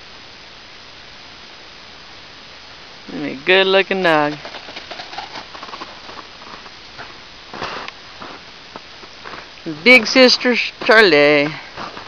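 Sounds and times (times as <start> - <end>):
footsteps crunching in snow: 4.0 - 12.0.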